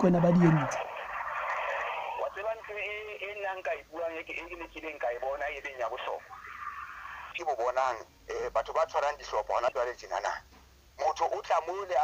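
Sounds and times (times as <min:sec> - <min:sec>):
telephone line hiss: 0:00.0 - 0:07.5
voice over telephone line: 0:02.2 - 0:06.2.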